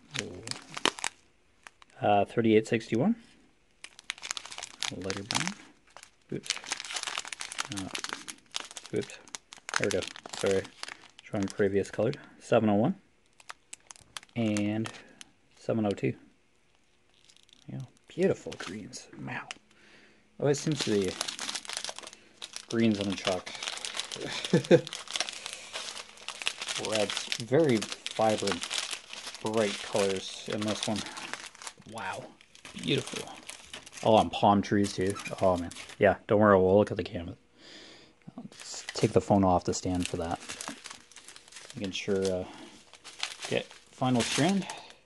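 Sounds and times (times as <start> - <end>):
plastic bags crinkling: 0.0 - 2.0, 3.8 - 12.2, 13.2 - 15.3, 16.7 - 18.9, 20.4 - 36.1, 38.5 - 45.0.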